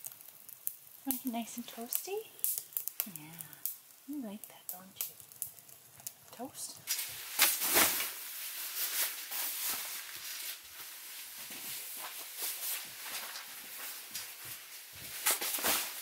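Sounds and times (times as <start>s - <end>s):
nylon sleeping bags rustling: 6.9s - 16.0s.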